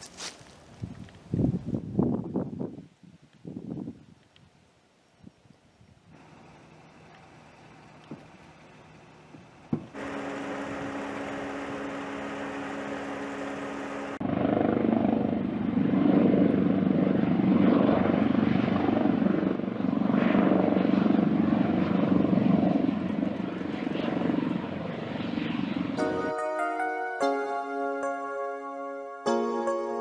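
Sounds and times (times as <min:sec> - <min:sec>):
steady droning hum: 0:06.1 - 0:14.2
helicopter flying past: 0:08.5 - 0:26.4.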